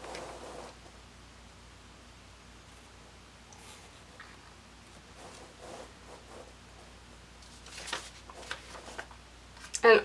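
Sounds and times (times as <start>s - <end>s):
soft paper rustles: 3.6s - 9.8s.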